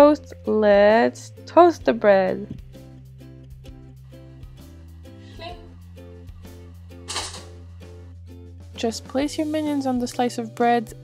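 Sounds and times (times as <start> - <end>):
music with plucked beat: 0.5 - 4.7.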